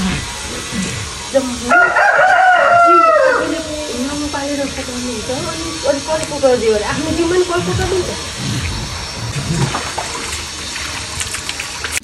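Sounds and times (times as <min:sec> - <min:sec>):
rooster crowing: 0:01.6 - 0:06.0.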